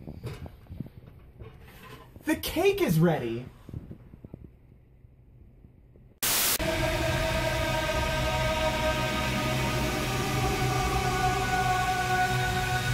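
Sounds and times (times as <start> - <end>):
static hiss: 6.2 - 11.2
burst of static: 6.2 - 12.9
droning held tones: 6.3 - 12.9.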